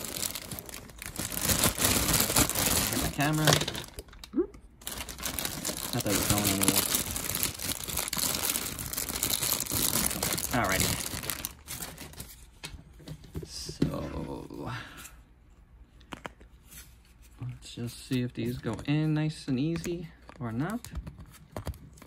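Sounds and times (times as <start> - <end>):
plastic bags crinkling: 0.0 - 12.4.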